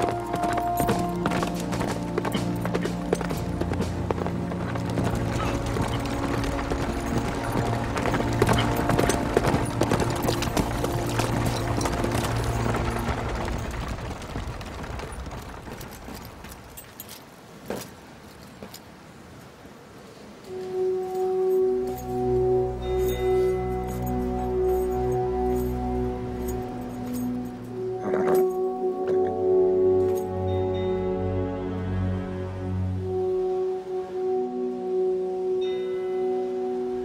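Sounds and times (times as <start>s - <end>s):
film score held notes: 0.0s - 16.7s, 18.8s - 37.0s
horse galloping hoofbeats: 0.0s - 17.9s, 23.9s - 29.3s.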